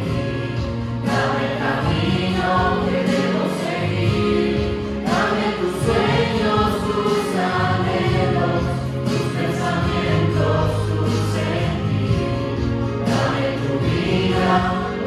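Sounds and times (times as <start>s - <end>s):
mixed group singing a religious song: 0.0s - 15.0s.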